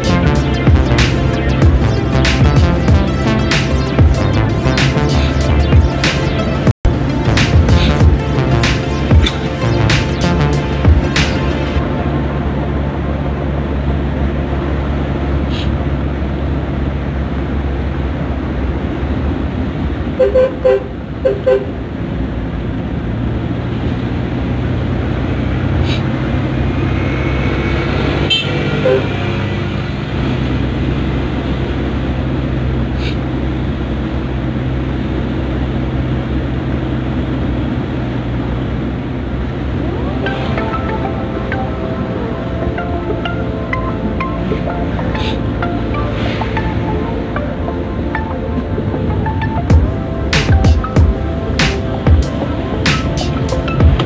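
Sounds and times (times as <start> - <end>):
van engine running: 0.0 - 54.0
horn toots: 20.2 - 21.8, 25.3 - 31.1.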